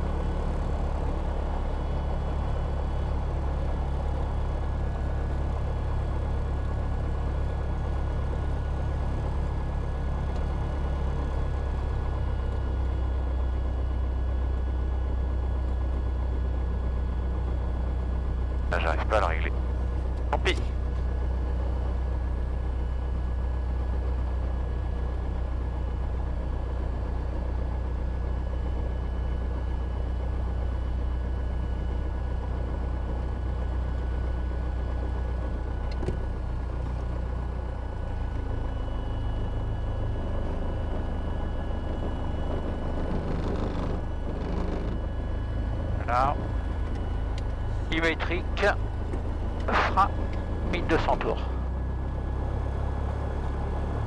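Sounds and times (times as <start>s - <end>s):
aircraft piston engine droning: 0.0s - 54.0s.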